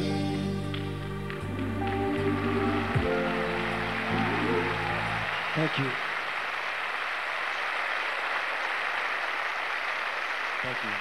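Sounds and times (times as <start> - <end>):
large audience applauding: 0.7 - 11.0.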